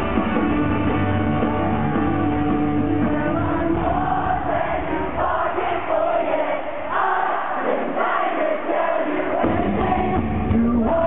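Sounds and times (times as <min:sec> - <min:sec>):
pop-punk band playing live: 0:00.0 - 0:05.9, 0:09.4 - 0:11.0
crowd singing and shouting: 0:00.0 - 0:11.0.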